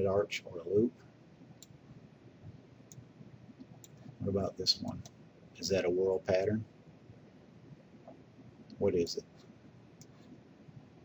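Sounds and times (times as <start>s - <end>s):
room noise: 0.0s - 11.0s
computer mouse clicks: 2.9s - 4.2s.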